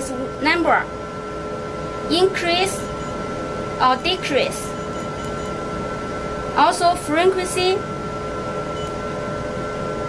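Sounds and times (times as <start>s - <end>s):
water-cooling system hum: 0.0s - 10.0s.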